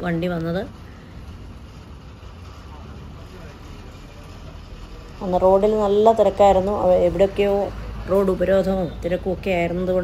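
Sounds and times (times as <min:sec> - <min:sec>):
diesel bus engine rumble: 0:00.0 - 0:10.0.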